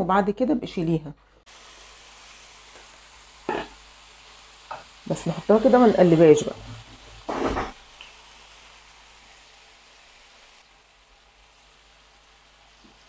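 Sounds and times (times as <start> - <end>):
beef sizzling in a pan: 1.5 - 13.0.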